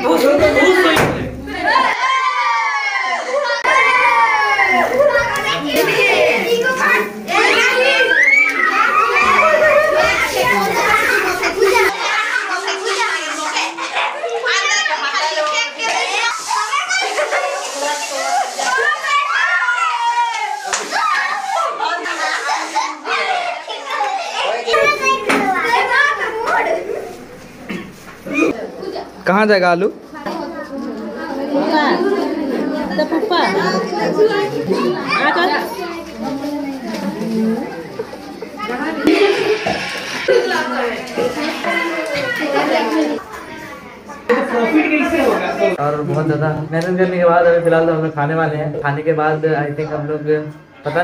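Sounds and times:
children shouting and squealing: 0.0 - 29.1, 30.4 - 44.3.

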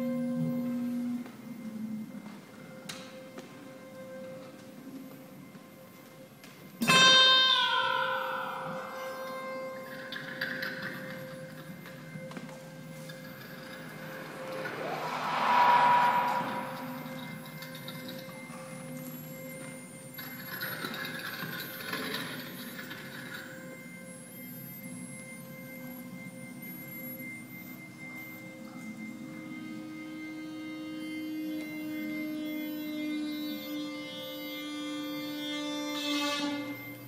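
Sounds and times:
hissing texture: 13.3 - 17.9.

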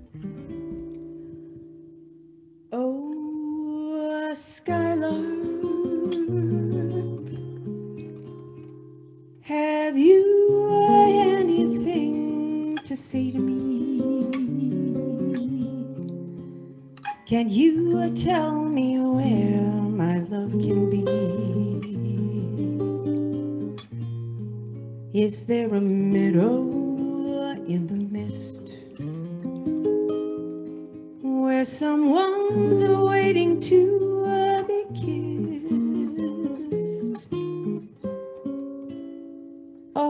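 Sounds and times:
classical guitar: 0.0 - 40.0
woman singing wordless phrases: 2.7 - 7.6, 9.4 - 16.1, 17.2 - 22.8, 25.1 - 28.9, 31.2 - 37.3.

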